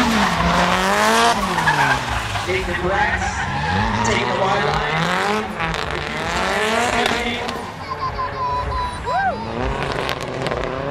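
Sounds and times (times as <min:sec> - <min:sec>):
car engine revving: 0:00.0 - 0:10.9
tire squealing: 0:00.0 - 0:10.9.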